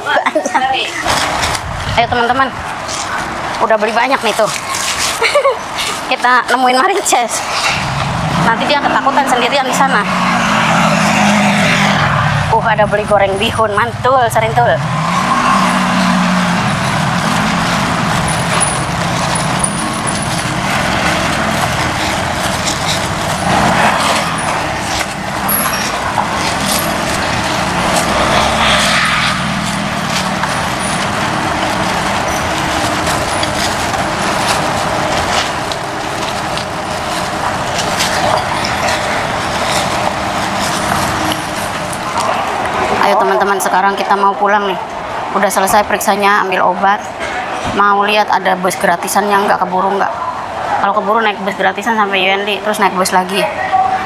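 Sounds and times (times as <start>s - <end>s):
road traffic noise: 0.0s - 54.0s.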